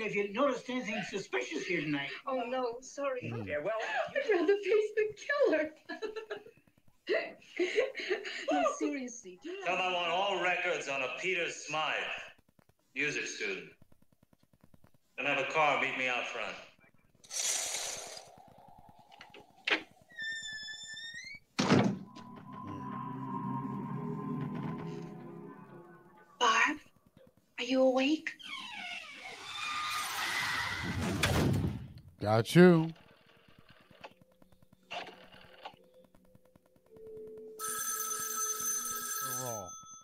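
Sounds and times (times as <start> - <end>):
high steady tone: 22.1 - 26.8
telephone bell ringing: 37.0 - 40.0.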